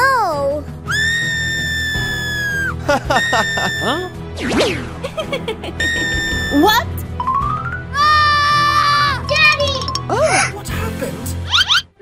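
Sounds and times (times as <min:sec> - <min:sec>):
background music: 0:00.0 - 0:12.0
cartoon crying wail: 0:00.9 - 0:04.1, 0:05.8 - 0:06.7, 0:08.0 - 0:09.2.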